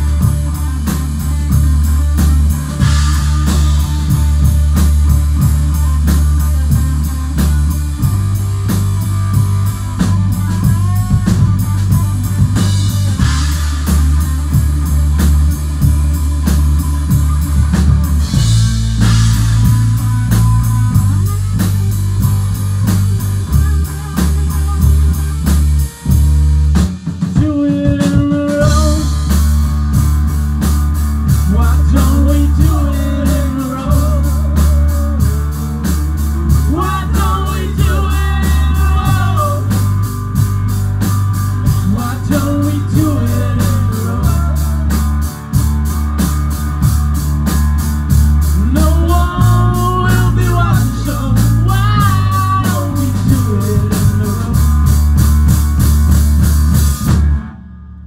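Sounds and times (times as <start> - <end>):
drum kit: 0.0 - 58.0
electric bass: 0.0 - 58.0
electric guitar: 0.0 - 58.0.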